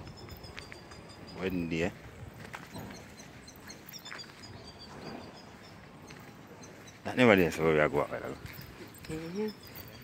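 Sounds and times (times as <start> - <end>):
high bird chirps: 0.0 - 10.0.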